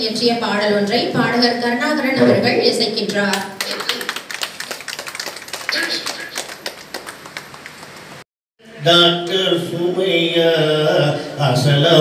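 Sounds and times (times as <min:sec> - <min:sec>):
audience hand clapping: 0:03.3 - 0:08.2
faint voices: 0:05.7 - 0:06.6.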